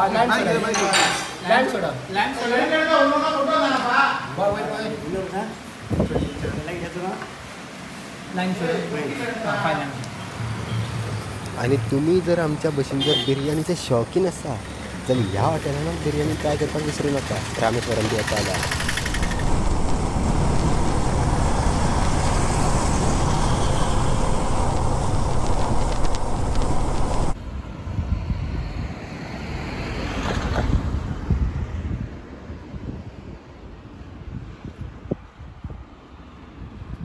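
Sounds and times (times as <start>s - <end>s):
outdoor wind: 0.0s - 37.0s
wind rushing on microphone: 5.8s - 6.9s, 18.4s - 37.0s
motorcycle engine: 16.6s - 25.0s.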